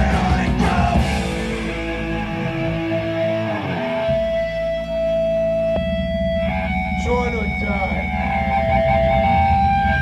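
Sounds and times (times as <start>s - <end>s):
live punk band playing: 0.0s - 10.0s.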